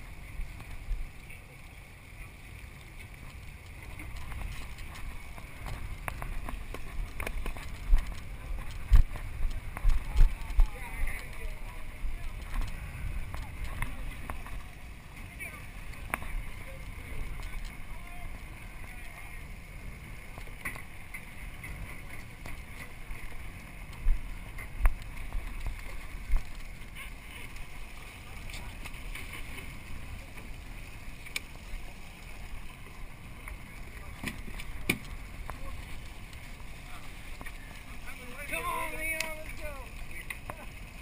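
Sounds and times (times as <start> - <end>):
water washing along boat hull: 0.0 - 41.0
wind on microphone: 3.2 - 31.2.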